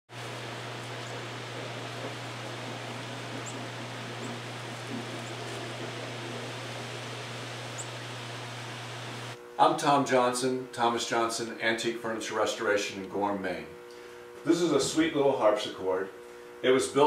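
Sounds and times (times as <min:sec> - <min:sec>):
low hum: 0:00.1 - 0:09.4
steady hiss: 0:00.1 - 0:09.8
small birds chirping: 0:00.2 - 0:09.4.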